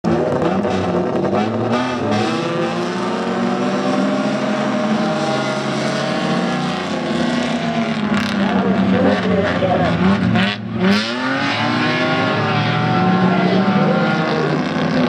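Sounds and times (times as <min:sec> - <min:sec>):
race car engines accelerating: 0:00.1 - 0:15.0.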